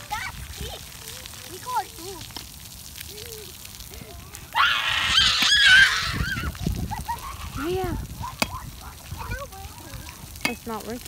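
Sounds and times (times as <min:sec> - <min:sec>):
children calling: 0:03.0 - 0:10.4.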